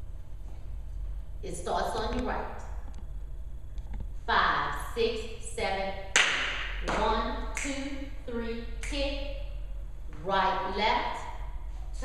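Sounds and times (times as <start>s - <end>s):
woman speaking: 1.4s - 2.7s, 4.3s - 6.0s, 6.8s - 9.4s, 10.1s - 11.3s.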